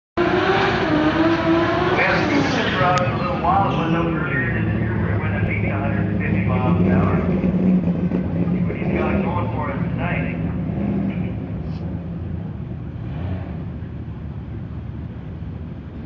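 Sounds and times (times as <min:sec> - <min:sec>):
car engine droning at low revs: 0:00.2 - 0:16.0
voices talking: 0:01.8 - 0:07.4, 0:08.2 - 0:11.4.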